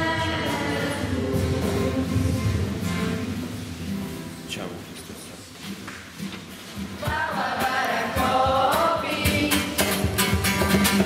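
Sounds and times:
girls singing together: 0.0s - 3.4s, 6.9s - 10.4s
acoustic guitar strumming: 0.0s - 11.0s.

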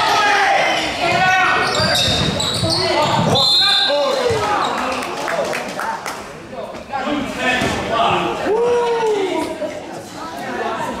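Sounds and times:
echoing indistinct chatter: 0.0s - 11.0s.

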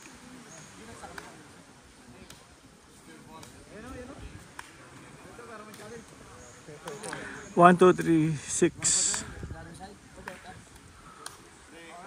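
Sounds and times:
distant people talking and calling: 0.0s - 12.0s.

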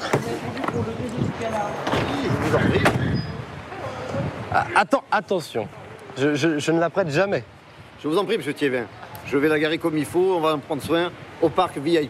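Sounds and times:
background voices talking: 0.0s - 6.6s.

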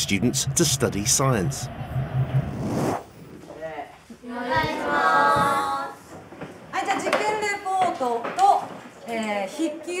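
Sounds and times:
children speaking in unison: 4.2s - 6.1s
scattered voices: 4.3s - 6.1s.

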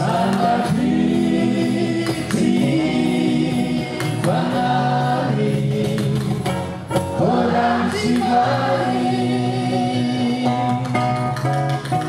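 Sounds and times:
men singing in harmony: 0.0s - 10.9s
acoustic guitar: 0.0s - 12.0s
cajon drum: 0.0s - 12.0s.

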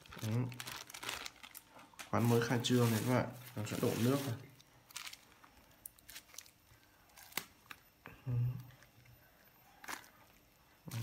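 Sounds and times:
plastic bag crinkling: 0.0s - 7.9s, 9.7s - 11.0s.

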